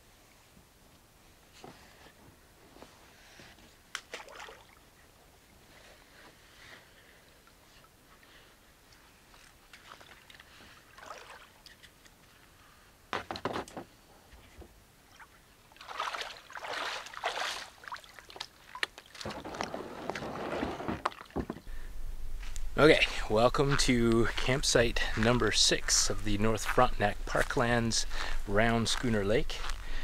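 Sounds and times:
water sloshing and splashing: 0:04.0 - 0:05.0, 0:09.3 - 0:12.3, 0:15.0 - 0:21.7.

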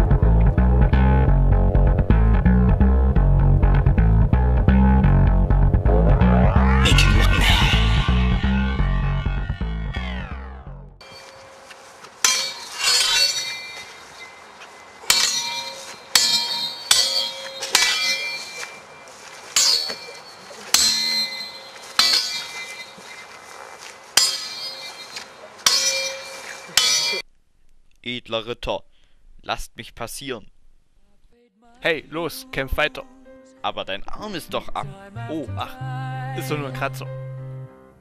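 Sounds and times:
music: 0:00.0 - 0:11.0, 0:31.5 - 0:38.0
sword blades clashing: 0:11.0 - 0:27.2.

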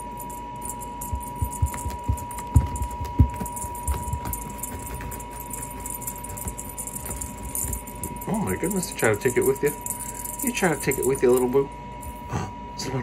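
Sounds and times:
wand toy rattling: 0:00.0 - 0:12.2.

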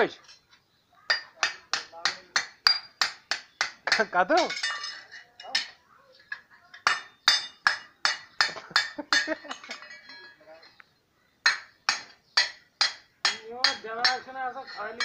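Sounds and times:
hammer striking steel: 0:11.5 - 0:15.0.

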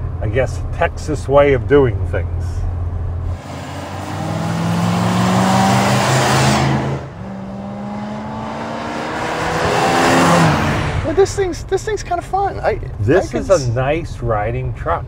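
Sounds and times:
truck engine accelerating past: 0:03.2 - 0:11.5.

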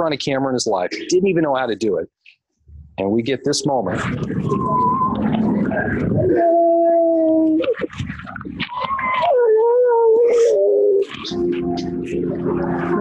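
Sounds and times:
excited voices: 0:03.6 - 0:11.5.

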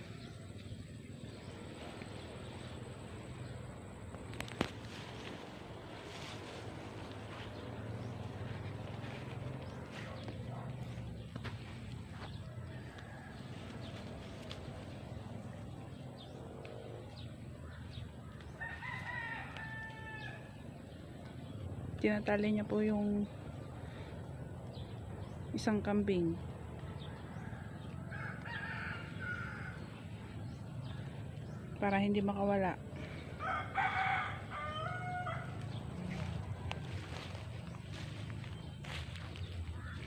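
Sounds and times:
rooster crowing: 0:12.5 - 0:14.2, 0:18.5 - 0:20.6, 0:27.1 - 0:30.0, 0:33.3 - 0:37.3.

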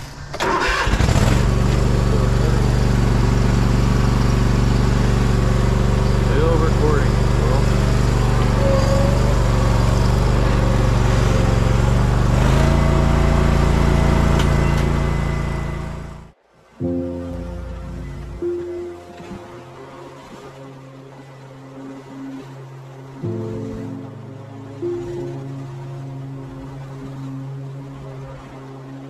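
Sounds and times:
engine idling: 0:00.0 - 0:16.4.

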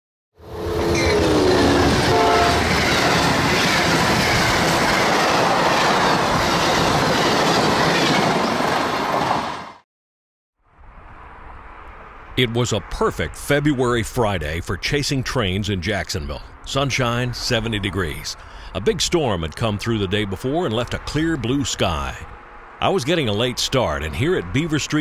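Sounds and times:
train horn: 0:00.4 - 0:02.9
passenger train passing: 0:00.4 - 0:09.8, 0:10.8 - 0:25.0
outdoor background noise: 0:10.6 - 0:25.0.

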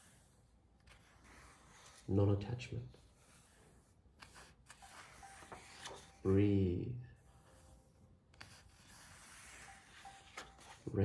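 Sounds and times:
book page turning: 0:00.1 - 0:02.2, 0:03.1 - 0:06.3, 0:07.5 - 0:11.0.

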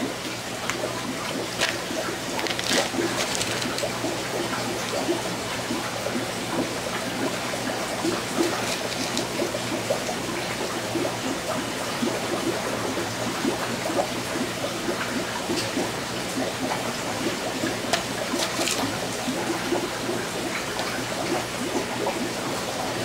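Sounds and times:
air bubbles gurgling: 0:00.0 - 0:23.0.

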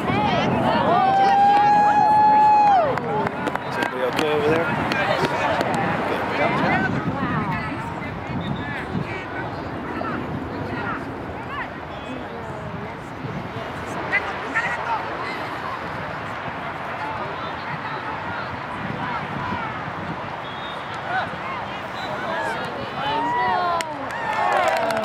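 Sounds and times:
spectator's high held shout: 0:00.1 - 0:03.0, 0:22.1 - 0:25.0
scattered voices: 0:02.9 - 0:25.0.

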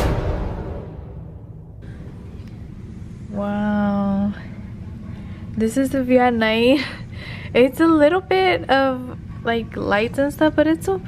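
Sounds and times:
deep impact sound effects: 0:00.0 - 0:02.3.

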